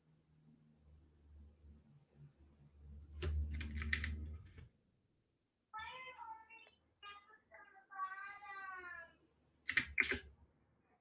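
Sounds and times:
computer keyboard typing: 3.2 - 4.2, 9.6 - 10.3.

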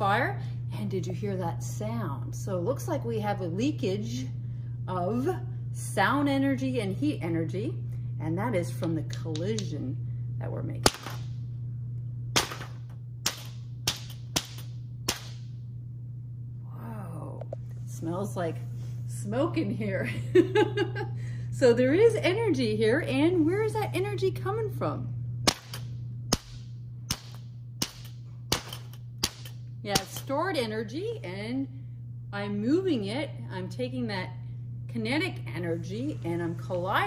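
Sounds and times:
metal balls cracking together: 10.8 - 11.3, 12.4 - 15.4, 25.4 - 30.3.

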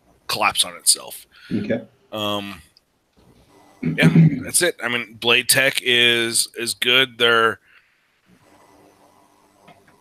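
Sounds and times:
faint steady hum: 0.0 - 10.0
microphone hiss: 0.0 - 10.0.

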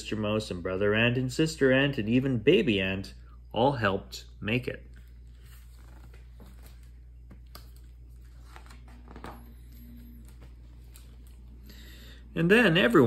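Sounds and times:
steady low hum: 0.0 - 13.0
book pages turning: 4.8 - 11.6.

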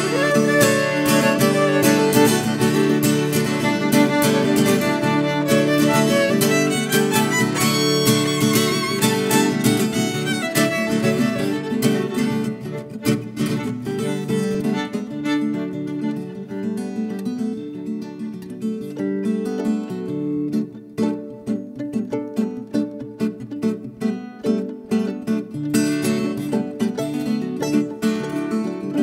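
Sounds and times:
bowed violin with vibrato: 0.0 - 15.9
plucked guitar notes: 0.0 - 29.0.

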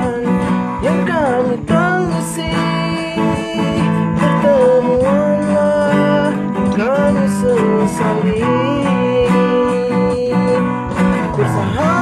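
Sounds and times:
band playing a song: 0.0 - 12.0
guitar accompaniment: 0.0 - 12.0.

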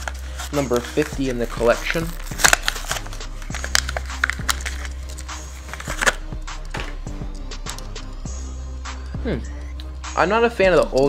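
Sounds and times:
plastic blister crackling: 0.0 - 7.0
background music: 0.0 - 11.0.

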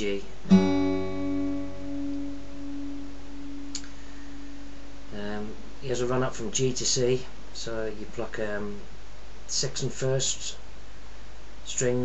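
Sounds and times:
acoustic guitar ringing: 0.0 - 5.9
faint click: 3.7 - 4.0.

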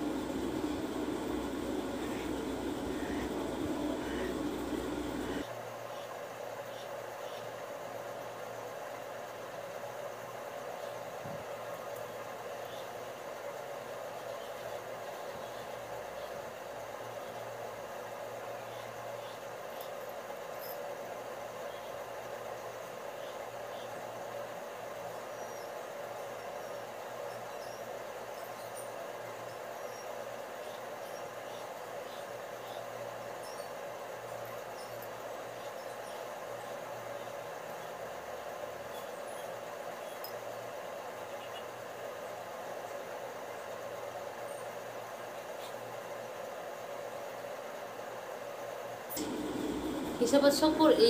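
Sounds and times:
background hum and hiss: 0.0 - 51.0.

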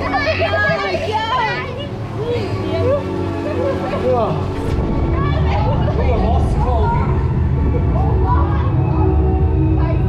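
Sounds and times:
children laughing and squealing: 0.0 - 9.2
steady low rumble: 1.8 - 10.0.

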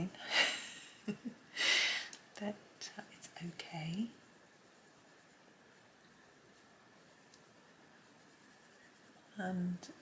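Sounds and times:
coloured pencil on paper: 2.2 - 10.0.

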